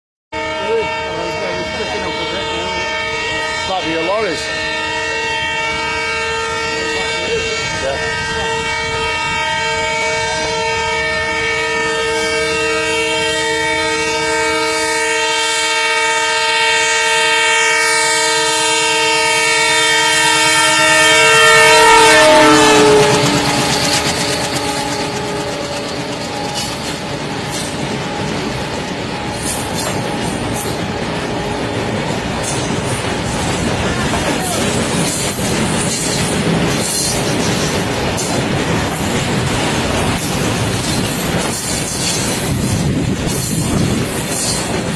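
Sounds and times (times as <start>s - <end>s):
locomotive horn: 0.3s - 32.7s
train wheels rumbling and clacking: 18.5s - 44.9s.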